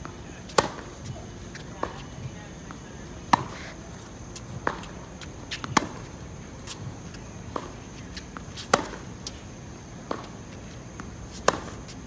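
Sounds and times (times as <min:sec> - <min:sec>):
tennis ball bounces: 0:00.0 - 0:12.0
racket striking tennis ball: 0:00.5 - 0:02.1, 0:03.2 - 0:12.0.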